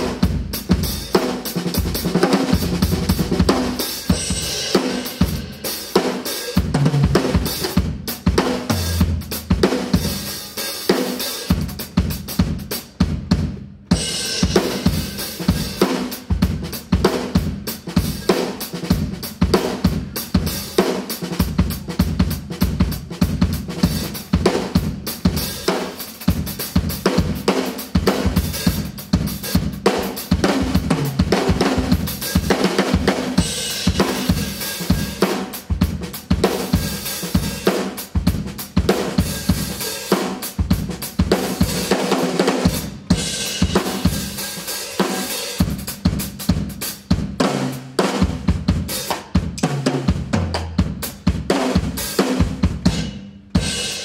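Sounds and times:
drum kit groove: 0.0s - 54.0s.

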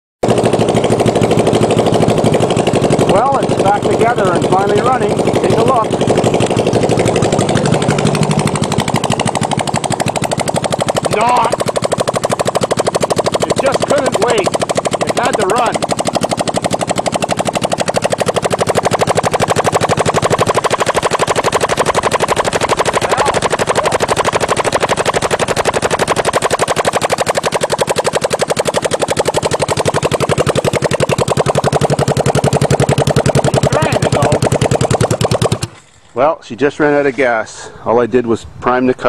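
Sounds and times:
motorcycle engine loud rapid popping: 0.2s - 36.0s.

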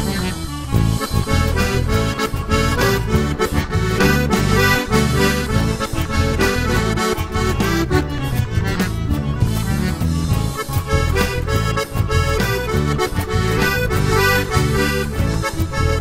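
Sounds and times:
accordion melody: 0.0s - 16.0s
rhythmic accompaniment: 0.0s - 16.0s.

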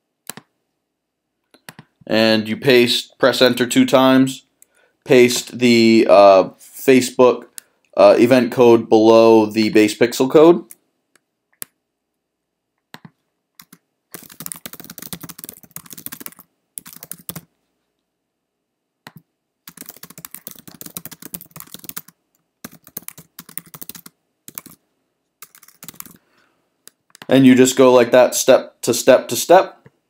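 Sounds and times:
typing on computer keyboard: 12.9s - 17.5s, 19.1s - 24.8s, 25.4s - 26.2s.

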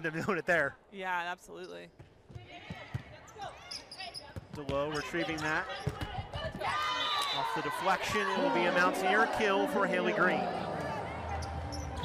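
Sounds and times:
sneakers squeaking on floor: 1.6s - 6.6s.

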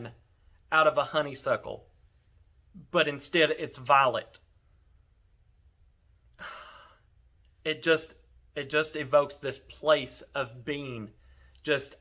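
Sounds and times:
person breathing in: 6.4s - 7.1s.

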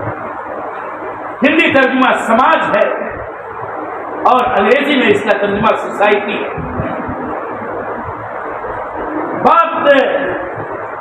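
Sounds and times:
low rumble: 6.4s - 9.5s.

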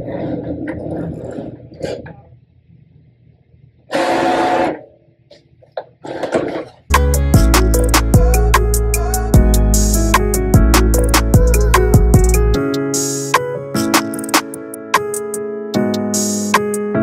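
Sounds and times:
background music: 6.9s - 17.0s.

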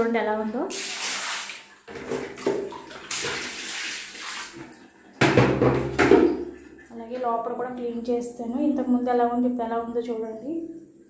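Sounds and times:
water running and splashing: 0.6s - 7.5s.

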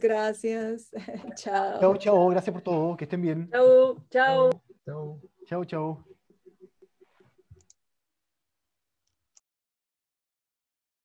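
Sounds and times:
faint irregular clicking: 5.4s - 7.8s.

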